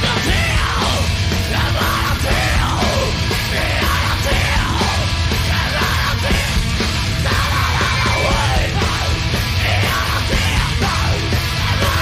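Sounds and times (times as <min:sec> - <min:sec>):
driving drumbeat: 0:00.0 - 0:12.0
heavy guitars: 0:00.0 - 0:12.0.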